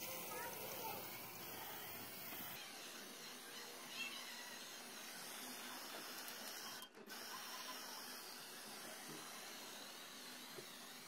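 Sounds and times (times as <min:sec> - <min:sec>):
spray paint can hissing: 0:00.0 - 0:02.6.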